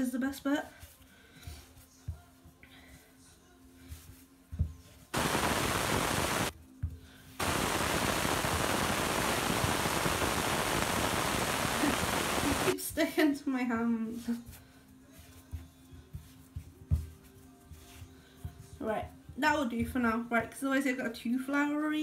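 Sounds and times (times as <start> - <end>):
loud steady hiss: 5.1 - 6.6, 7.4 - 12.8
dough kneaded by hand thuds: 12.8 - 20.6.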